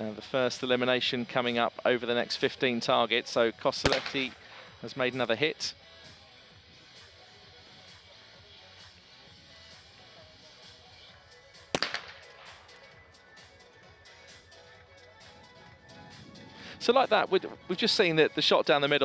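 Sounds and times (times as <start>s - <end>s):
shotgun shot with echo: 3.8s - 4.8s, 11.8s - 13.0s.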